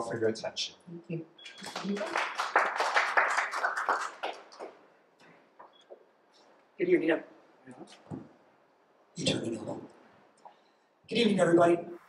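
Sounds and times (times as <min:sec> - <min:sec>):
audience applauding: 0:01.6 - 0:04.8.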